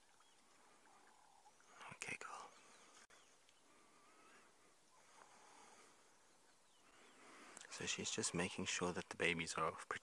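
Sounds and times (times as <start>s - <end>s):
faint thin bird calls: 0.0s - 7.9s.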